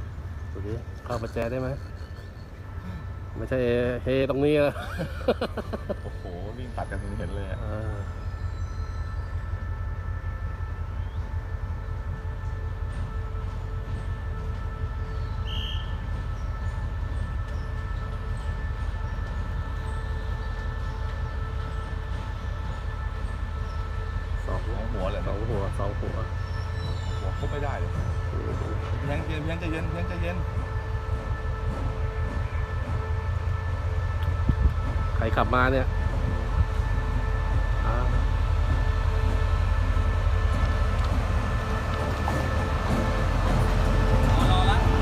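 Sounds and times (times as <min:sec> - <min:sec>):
locomotive engine rumbling: 0:00.0 - 0:45.0.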